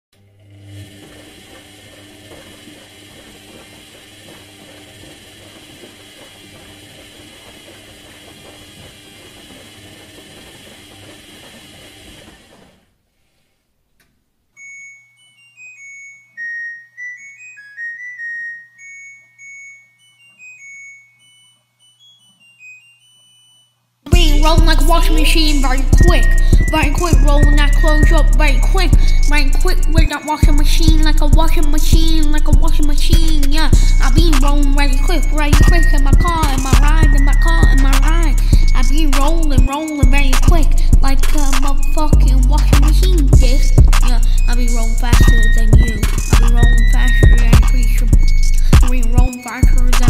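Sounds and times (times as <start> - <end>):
washing machine churning and rattling: 0.2 - 13.0, 24.2 - 50.0
high beeping melody: 14.5 - 50.0.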